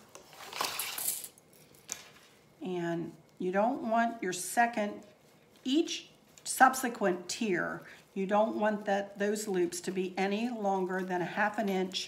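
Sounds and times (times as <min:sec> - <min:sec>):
ribbon rustling: 0:00.0 - 0:12.0.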